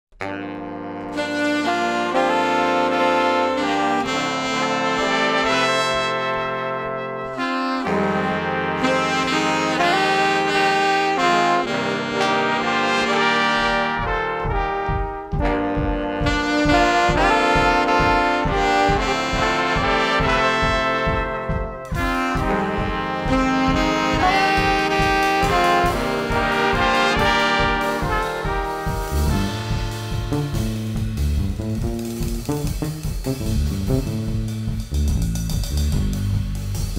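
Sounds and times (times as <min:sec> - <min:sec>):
big band horn section chords: 0:00.1 - 0:36.9
steady low beat: 0:00.2 - 0:36.9.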